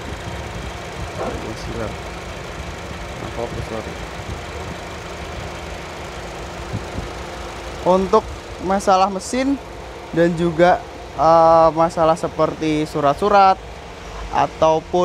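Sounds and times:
car engine idling: 0.0s - 15.0s.

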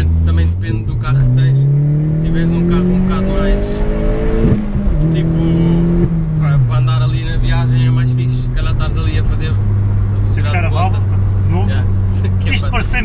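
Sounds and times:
car engine drone from inside cabin: 0.0s - 13.0s.

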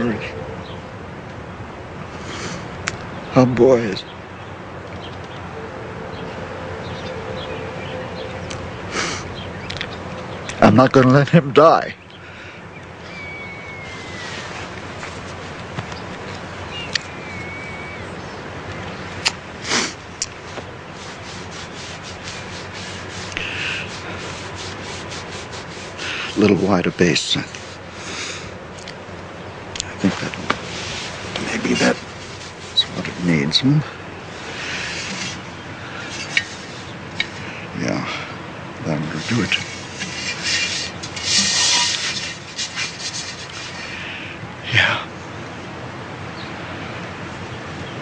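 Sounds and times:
hands rubbing wet clay: 19.2s - 26.8s, 30.1s - 33.5s, 39.1s - 43.9s.

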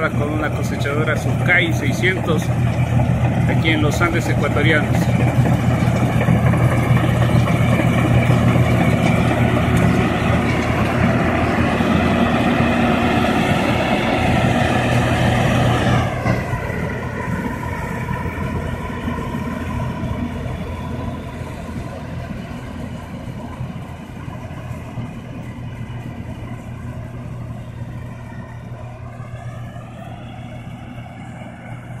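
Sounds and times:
combine harvester engine running: 0.0s - 32.0s.

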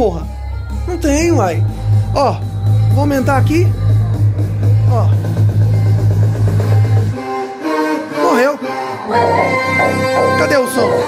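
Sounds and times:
bass-heavy music from speaker: 0.0s - 11.0s.

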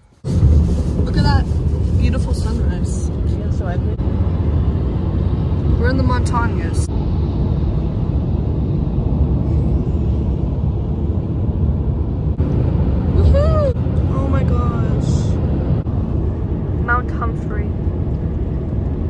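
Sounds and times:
car cabin road rumble: 0.0s - 19.0s.

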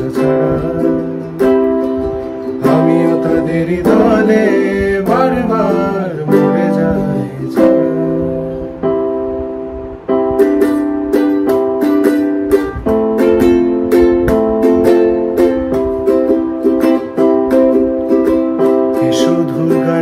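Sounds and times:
person singing: 0.0s - 9.0s, 18.2s - 20.0s
held chord tones: 0.0s - 20.0s
ukulele strumming: 0.0s - 20.0s.

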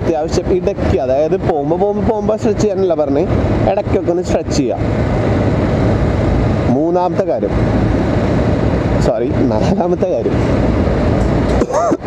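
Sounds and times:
motorcycle engine drone: 0.0s - 12.0s
wind rush on microphone: 0.0s - 12.0s.

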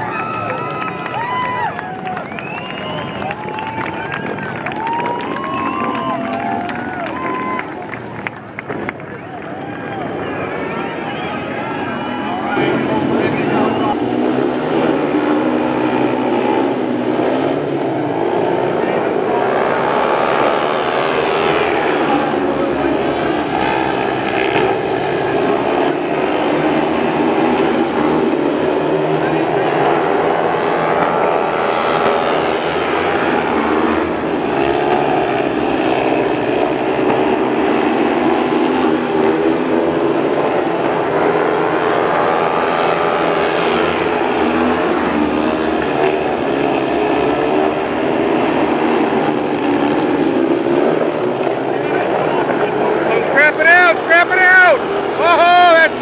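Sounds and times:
motorcycle engines racing: 0.0s - 56.0s.

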